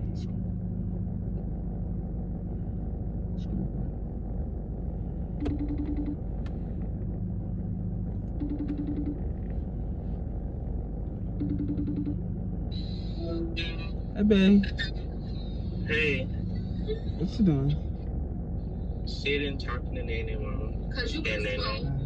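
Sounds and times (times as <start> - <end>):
low rumble: 0.0 - 22.0
pulsed ringing tone: 5.3 - 6.3, 8.3 - 9.6, 11.2 - 20.0.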